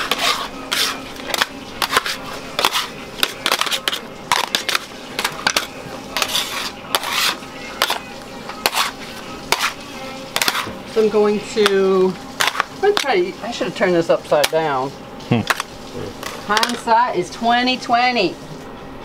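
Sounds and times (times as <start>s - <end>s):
metal scraper scraping on marble: 0.0s - 8.0s, 8.6s - 9.8s, 10.4s - 10.8s.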